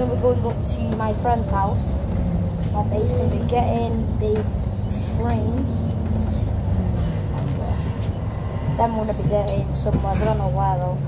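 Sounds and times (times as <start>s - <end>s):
bus rumbling inside cabin: 0.0s - 11.0s.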